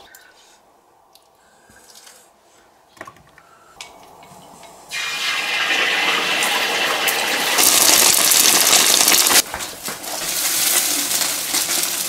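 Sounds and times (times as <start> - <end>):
egg sizzling in hot oil: 4.9 - 9.4, 10.0 - 12.0.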